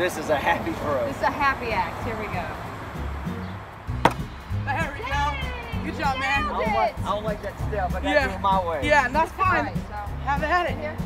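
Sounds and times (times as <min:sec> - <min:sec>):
background music: 0:00.0 - 0:11.0
hatchet striking wooden target: 0:04.0 - 0:04.3.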